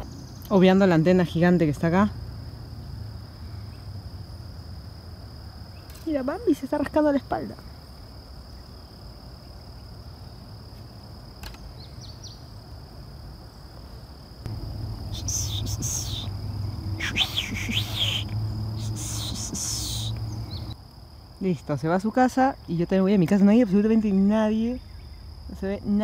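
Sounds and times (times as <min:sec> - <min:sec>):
birds chirping: 0:11.4 - 0:12.5, 0:14.5 - 0:20.8
insects calling high note: 0:14.5 - 0:20.8.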